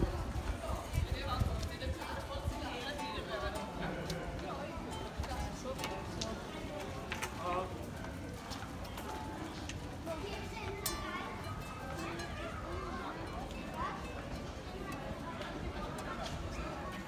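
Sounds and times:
footsteps on stone: 1.4s - 10.9s
faint plucked guitar notes: 2.9s - 7.2s.

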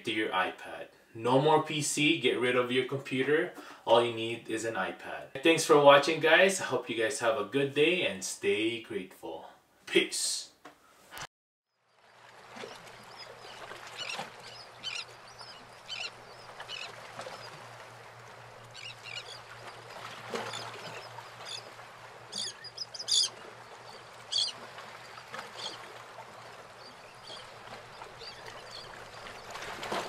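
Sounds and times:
faint running water: 11.7s - 30.0s
birds chirping: 12.6s - 29.6s.

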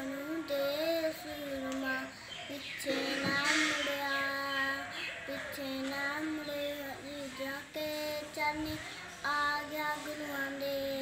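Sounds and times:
boy singing devotional song: 0.0s - 11.0s.

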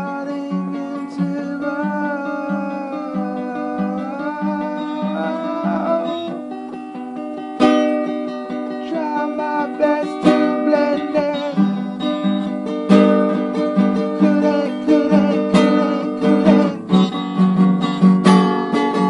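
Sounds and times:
person singing: 0.0s - 6.9s, 8.2s - 17.4s
acoustic guitar strumming: 0.0s - 19.0s.

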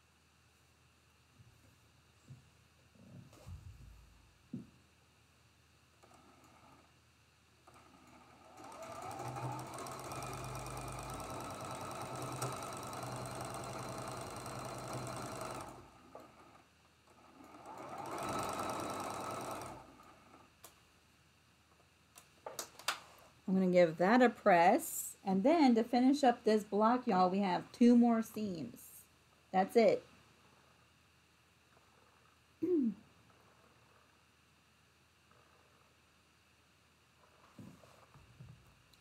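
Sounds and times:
sewing machine stitching: 7.6s - 20.4s.

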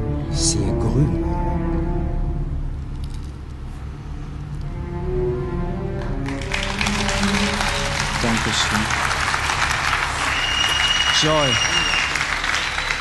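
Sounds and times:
slow music with held notes: 0.0s - 8.5s
audience applause: 6.0s - 13.0s.

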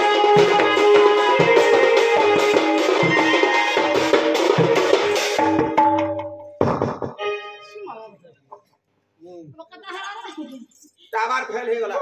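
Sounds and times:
live folk music with drums: 0.0s - 7.8s.

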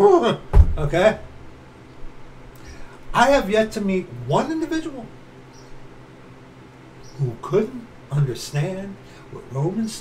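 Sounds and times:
room hiss and hum: 0.0s - 10.0s.

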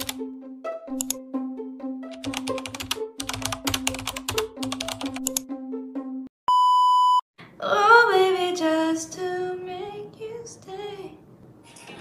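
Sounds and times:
test-tone beep: 6.5s - 7.2s.

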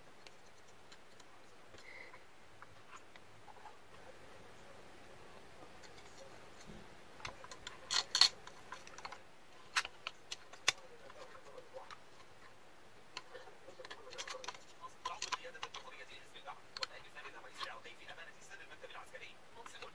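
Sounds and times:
plastic parts clicking: 7.2s - 11.2s, 13.2s - 16.0s.

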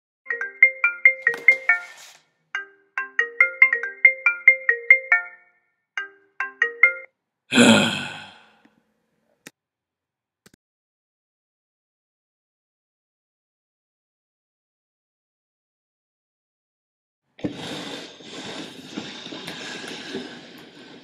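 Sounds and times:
phone alarm marimba melody: 0.3s - 2.0s, 2.6s - 7.1s.

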